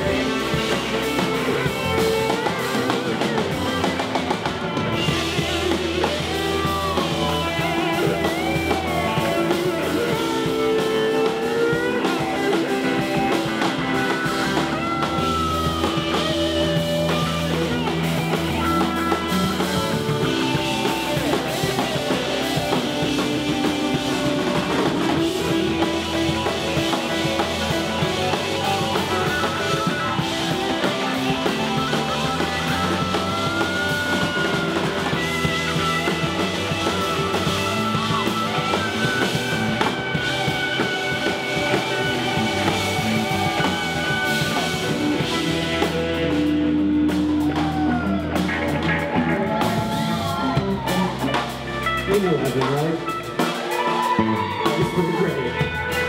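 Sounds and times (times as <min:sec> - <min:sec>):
live rock band playing: 0:00.0 - 0:56.0.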